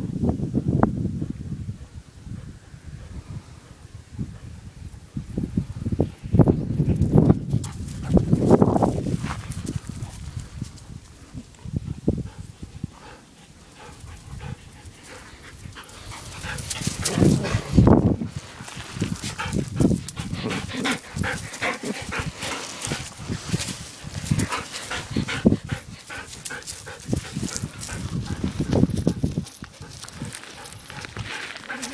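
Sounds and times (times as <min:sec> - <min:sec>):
dogs breathing: 0:07.6 - 0:31.9
heavy low bumps: 0:13.9 - 0:31.8.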